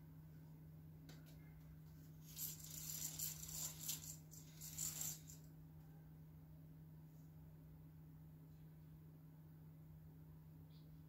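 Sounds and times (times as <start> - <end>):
low electrical hum: 0.0 - 11.0
rustling and rattling handling noise: 2.0 - 5.4.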